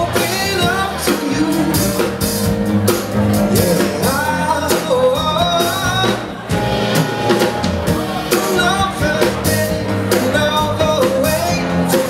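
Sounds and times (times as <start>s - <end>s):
man singing: 0.0s - 2.5s, 3.2s - 6.9s, 7.9s - 12.0s.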